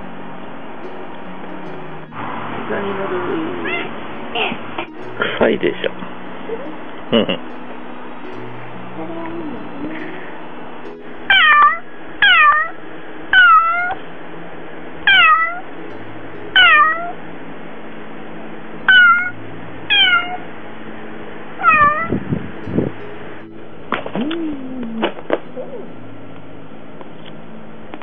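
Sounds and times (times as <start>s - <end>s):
cat meowing: 3.6s - 4.5s, 11.3s - 14.0s, 15.1s - 15.7s, 16.6s - 17.2s, 18.9s - 20.4s, 21.6s - 22.1s.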